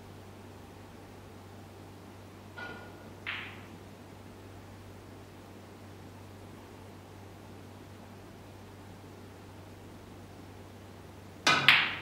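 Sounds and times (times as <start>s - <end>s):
low hum and faint hiss: 0.0s - 12.0s.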